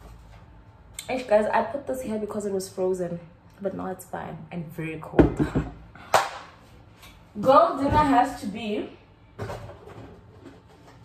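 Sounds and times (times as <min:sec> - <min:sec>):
kitchen items handling noises: 0:09.3 - 0:11.0.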